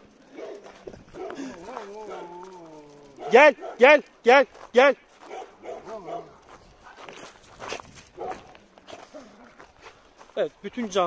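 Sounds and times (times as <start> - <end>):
footsteps on dirt: 0.0 - 11.0
dogs barking: 0.2 - 2.5, 3.1 - 4.0, 5.2 - 6.6, 8.1 - 8.6.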